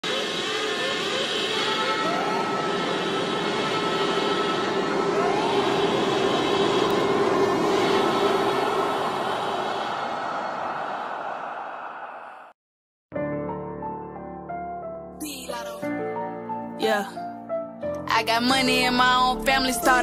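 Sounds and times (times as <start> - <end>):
steady held tone: 0.0 - 12.5
noisy logo intro swell: 0.1 - 12.5
short rising glides: 0.1 - 12.5.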